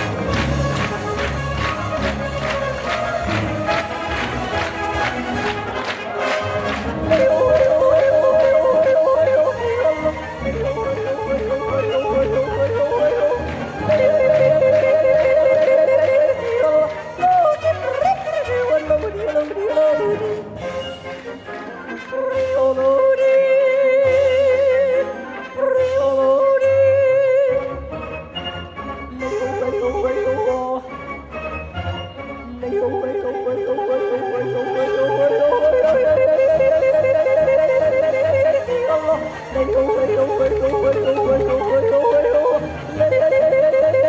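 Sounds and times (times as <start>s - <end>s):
woman yodeling: 7.1s - 10.1s, 32.5s - 44.0s.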